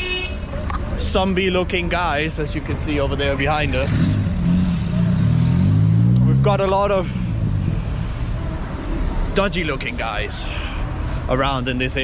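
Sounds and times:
vehicle engine driving past: 3.6 - 9.3.

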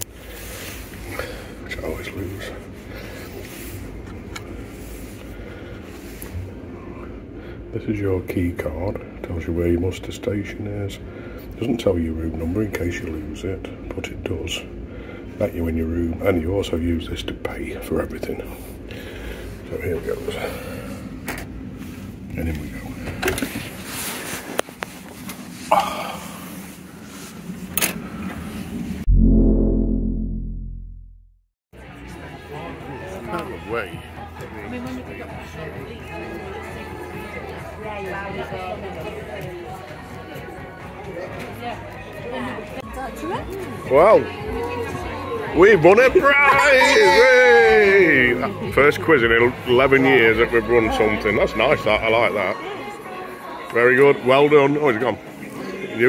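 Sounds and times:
machinery and ventilation hum: 0.0 - 29.0
deep cinematic boom: 29.1 - 31.4.

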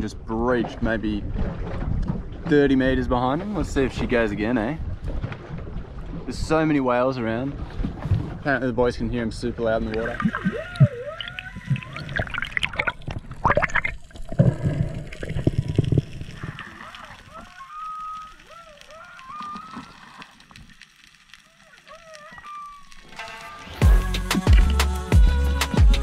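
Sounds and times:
water sloshing and bubbling: 0.0 - 23.8
whale song underwater: 10.0 - 23.8.

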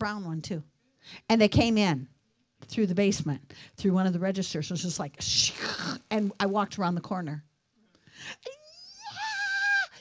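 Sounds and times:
woman squealing: 8.4 - 10.0.

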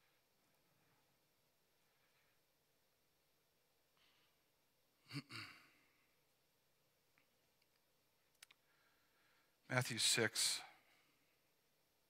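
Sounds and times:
faint clicks: 7.1 - 8.6.

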